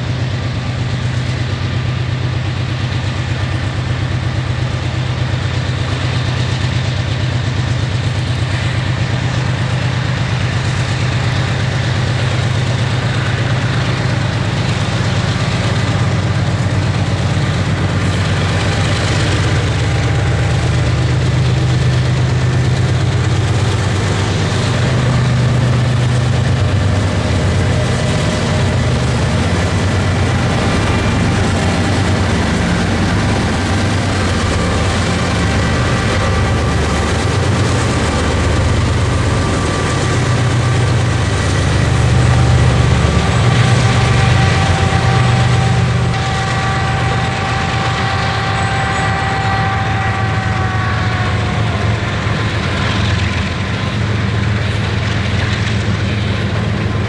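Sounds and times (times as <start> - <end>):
diesel locomotive engine drone: 0.0 - 57.0.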